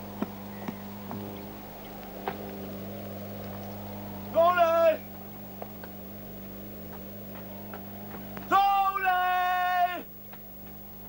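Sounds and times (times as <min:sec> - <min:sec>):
low electrical hum: 0:00.0 - 0:11.0
faint irregular clicks: 0:05.1 - 0:08.5, 0:10.1 - 0:11.0.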